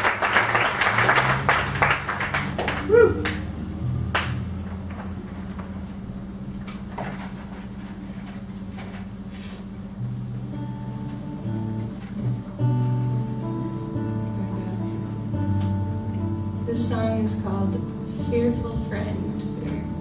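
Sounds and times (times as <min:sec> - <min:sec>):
applause: 0:00.0 - 0:03.5, 0:04.1 - 0:04.4
acoustic guitar notes plucked: 0:09.9 - 0:20.0.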